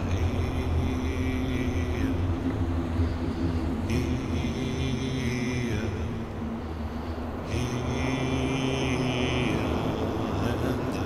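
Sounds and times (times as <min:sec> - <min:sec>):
ambient meditation music: 0:00.0 - 0:11.0
low rumbling drone: 0:00.0 - 0:11.0.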